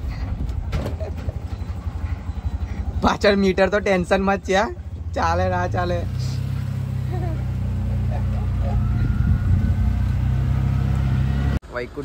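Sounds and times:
auto-rickshaw engine running: 0.0s - 12.0s.

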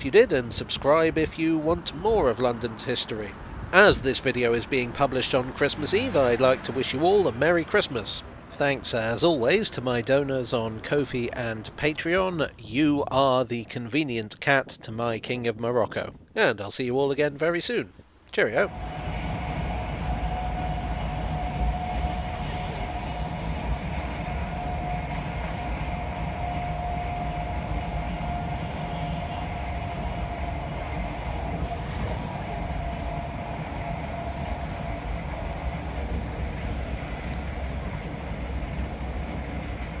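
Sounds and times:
high whine: 18.6s - 40.0s
train rumble inside carriage: 18.7s - 40.0s.

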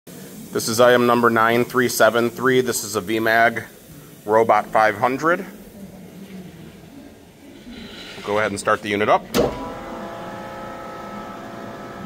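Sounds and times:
soft hiss: 0.1s - 12.0s.

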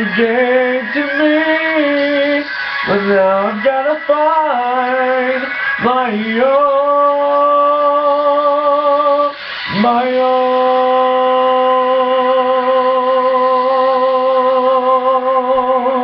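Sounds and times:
man singing unaccompanied: 0.0s - 16.0s
quick breath: 9.3s - 9.8s.

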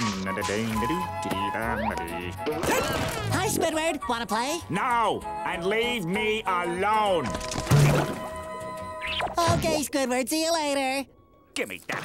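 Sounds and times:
light background music: 0.0s - 12.0s.

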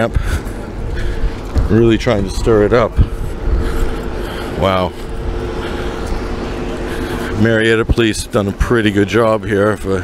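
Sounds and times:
engine hum: 0.0s - 10.0s.

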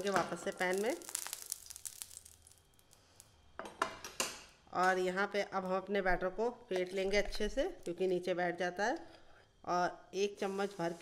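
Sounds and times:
oil sizzling in a pan: 0.0s - 3.3s, 10.3s - 11.0s.

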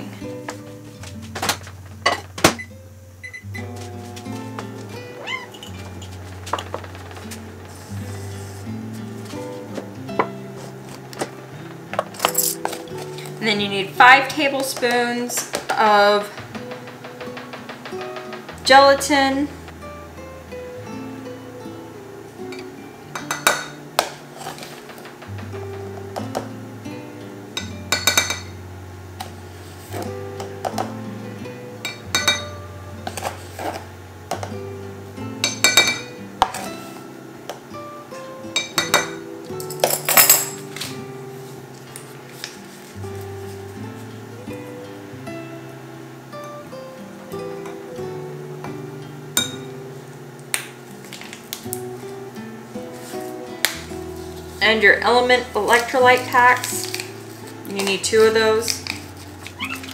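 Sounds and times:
acoustic guitar music: 0.0s - 59.9s
spoon clinking against glass cup: 31.8s - 32.5s.

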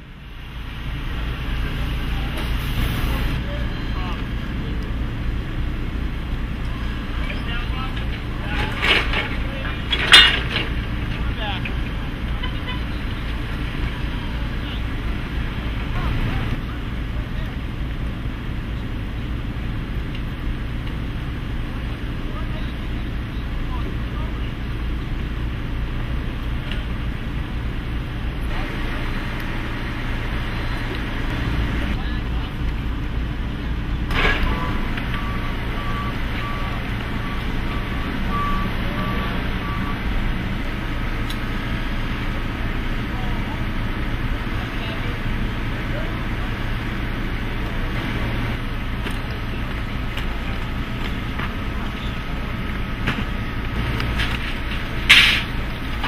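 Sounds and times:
forklift engine rumble: 0.0s - 56.0s
backup alarm beeping: 34.2s - 40.4s.

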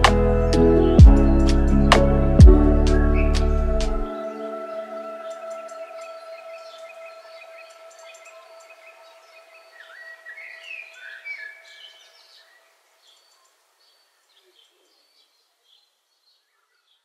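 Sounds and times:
lofi music held notes: 0.0s - 6.9s
bird chirps: 0.0s - 17.0s.

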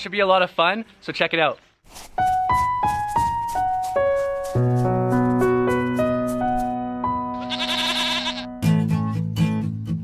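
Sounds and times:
held piano chord: 2.7s - 7.4s
goat bleat sound effect: 7.3s - 8.6s
acoustic guitar strumming: 8.5s - 10.0s.

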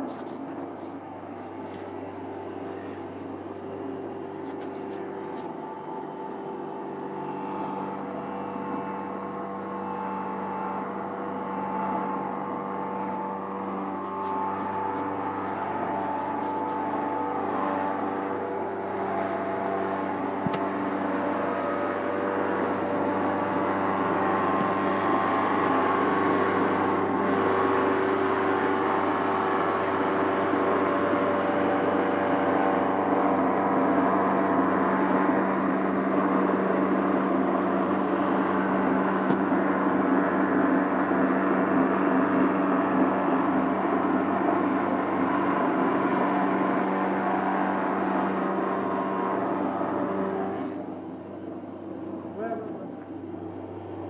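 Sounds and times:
tile cutting machine humming: 0.0s - 54.0s.

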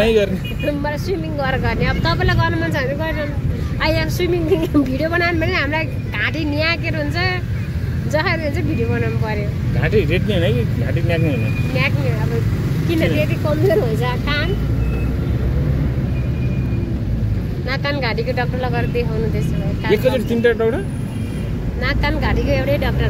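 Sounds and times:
people talking: 0.0s - 7.4s, 11.2s - 14.6s
car rumbling on the move: 0.0s - 23.0s.

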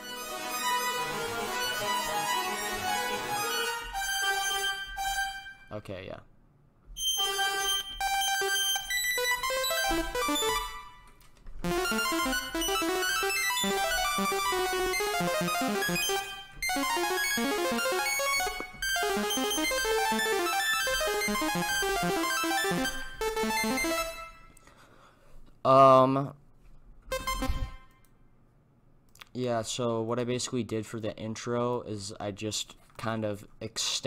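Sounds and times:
keys and synth chords: 0.0s - 5.8s, 7.0s - 24.6s, 27.1s - 28.1s.

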